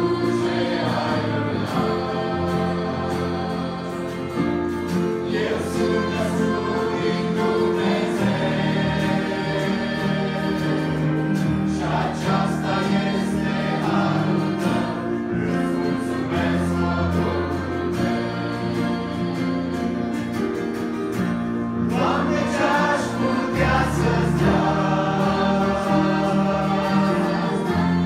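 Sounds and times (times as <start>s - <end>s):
acoustic guitar: 0.0s - 28.0s
choir singing a hymn: 0.0s - 28.0s.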